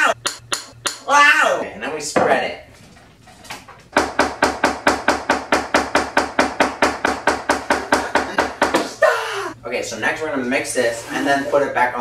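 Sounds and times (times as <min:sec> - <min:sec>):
metal spoon knocking on metal pan: 0:00.1 - 0:01.1.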